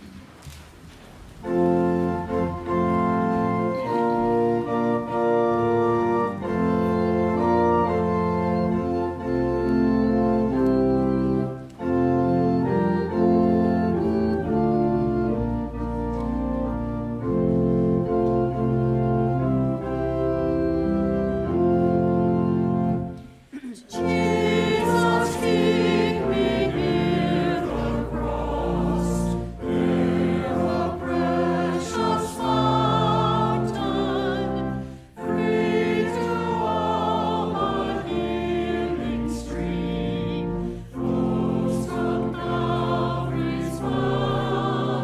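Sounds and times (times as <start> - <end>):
church organ chords: 1.4 - 45.0
congregation singing a hymn: 1.4 - 45.0.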